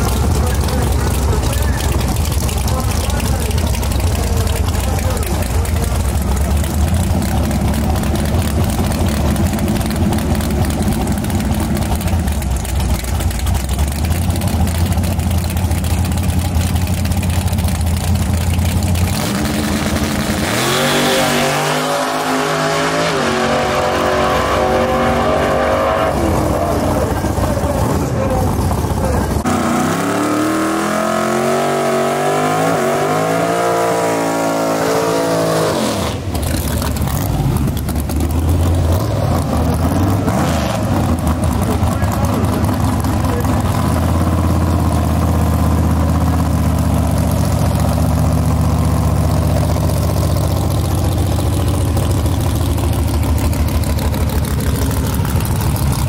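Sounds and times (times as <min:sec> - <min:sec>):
car engines idling: 0:00.0 - 0:56.0
engine revving and accelerating: 0:19.0 - 0:46.6.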